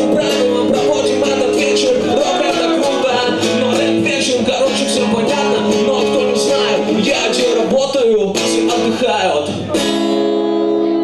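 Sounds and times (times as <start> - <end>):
man singing: 0.0 - 10.1
strummed acoustic guitar: 0.0 - 11.0.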